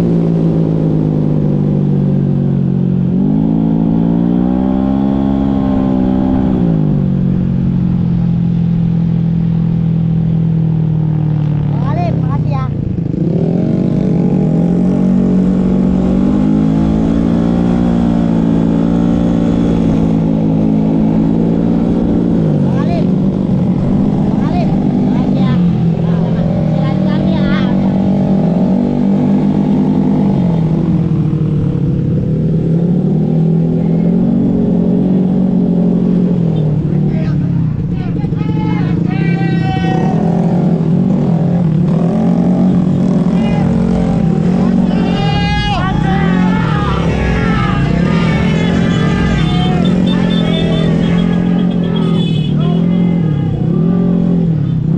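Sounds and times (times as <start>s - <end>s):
scooter engine revving: 39.6s - 54.8s.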